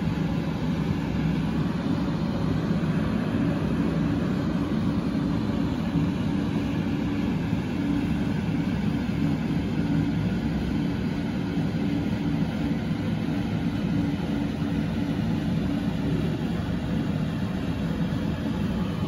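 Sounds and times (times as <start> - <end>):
faint hum: 0.0 - 19.0
low mechanical rumble: 0.0 - 19.0.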